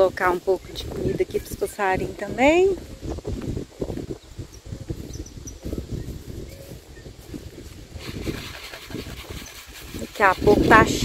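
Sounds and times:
footsteps on dry grass: 0:00.0 - 0:11.0
wind on microphone: 0:00.0 - 0:11.0.

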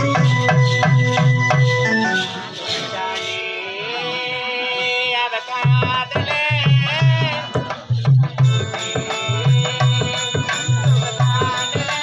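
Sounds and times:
hand drum rhythm: 0:00.0 - 0:03.2, 0:05.6 - 0:12.0.

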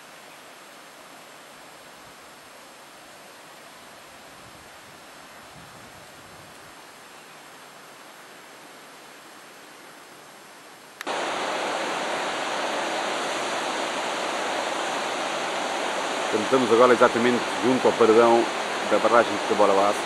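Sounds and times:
water rushing at a dam: 0:00.0 - 0:20.0.

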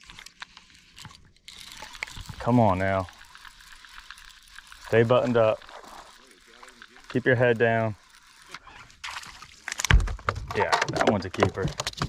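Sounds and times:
fish thrashing water splashing: 0:08.2 - 0:10.0.

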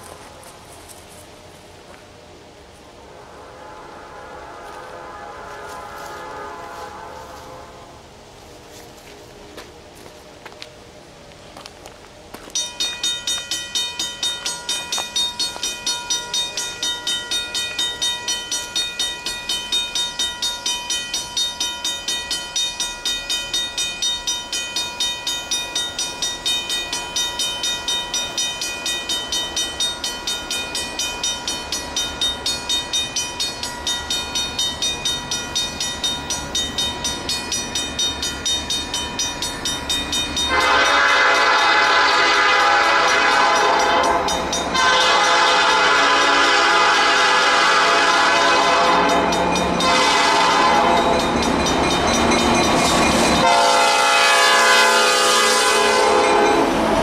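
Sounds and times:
locomotive air horn: 0:03.0 - 0:08.2, 0:40.5 - 0:51.2, 0:53.4 - 0:56.7
crossing bell dinging: 0:12.3 - 0:57.0.

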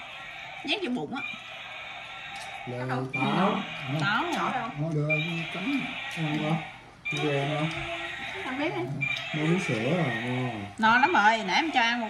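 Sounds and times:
people talking: 0:00.7 - 0:01.3, 0:02.7 - 0:12.0.

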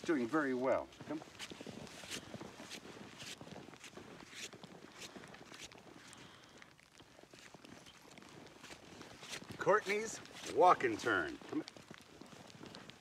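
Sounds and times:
footsteps in snow: 0:00.0 - 0:06.5, 0:07.2 - 0:13.0.

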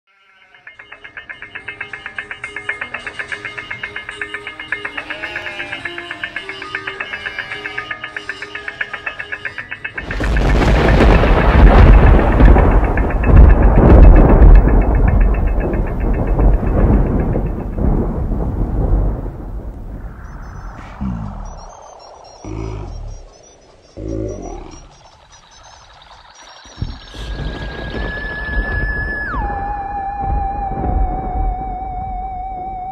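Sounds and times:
music with fast pulsing tone: 0:00.1 - 0:19.2
thunderclap rumbling: 0:10.0 - 0:23.5, 0:26.7 - 0:32.9.

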